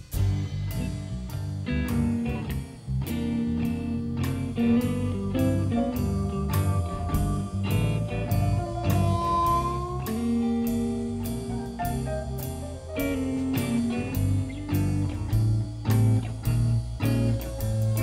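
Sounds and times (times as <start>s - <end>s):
drum kit beat: 0.0s - 18.0s
live rock band playing: 0.0s - 18.0s.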